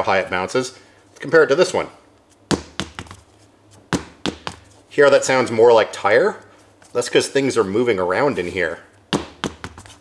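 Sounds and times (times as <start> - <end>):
tire thudding on concrete: 2.5 - 3.2, 3.9 - 4.6, 9.1 - 9.8.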